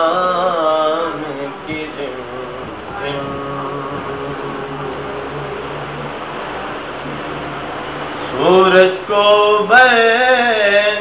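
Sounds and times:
man reciting unaccompanied: 0.0s - 6.1s, 8.2s - 11.0s
background hum with low tones: 0.0s - 11.0s.

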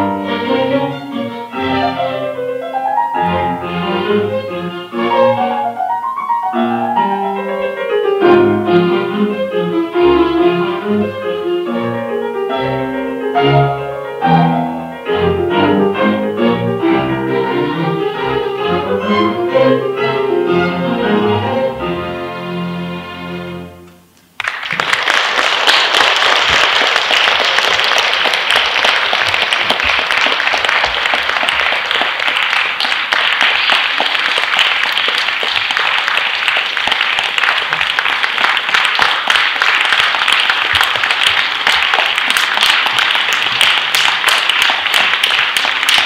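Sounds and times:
audience applause: 24.4s - 46.0s.

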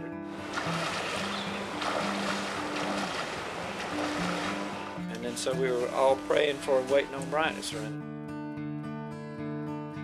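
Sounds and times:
water sloshing from wading: 0.3s - 7.5s
soft low background music: 0.3s - 8.0s.

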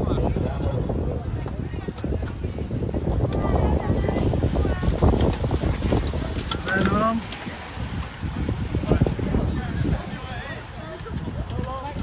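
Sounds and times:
spectators' voices: 0.0s - 12.0s
wind on microphone: 0.0s - 12.0s.

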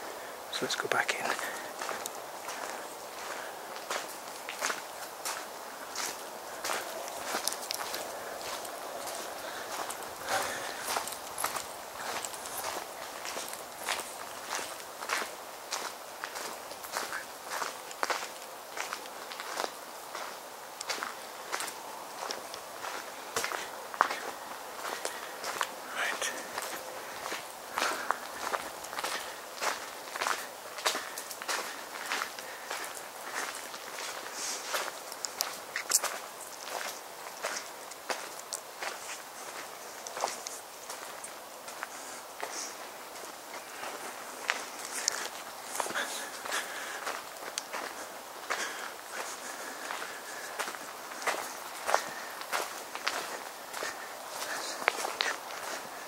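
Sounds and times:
footsteps on woodland ground: 0.0s - 56.0s.

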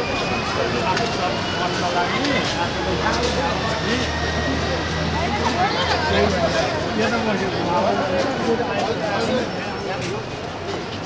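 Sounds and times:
people talking: 0.0s - 11.0s
traffic hum: 0.0s - 11.0s.

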